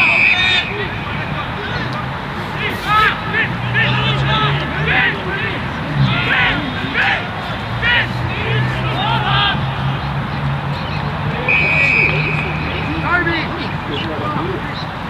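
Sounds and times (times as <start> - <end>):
whistle blast: 0.0 - 0.9, 11.4 - 12.9
players shouting: 0.0 - 14.9.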